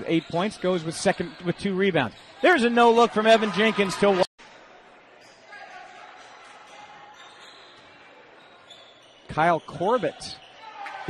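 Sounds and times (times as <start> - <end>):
crowd and court noise hum: 0.0 - 11.0.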